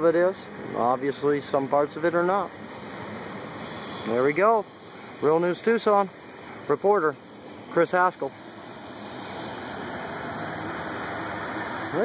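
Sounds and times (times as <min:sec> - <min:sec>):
rushing outdoor background noise: 0:00.0 - 0:12.0.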